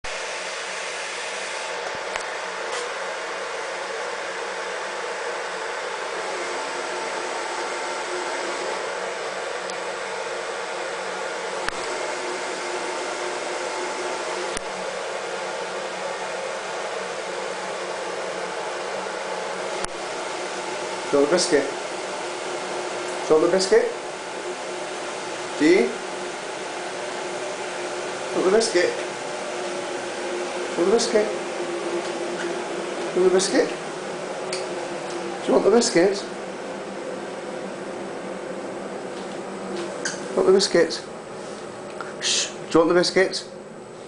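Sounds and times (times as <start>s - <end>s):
fan running: 0.0s - 44.0s.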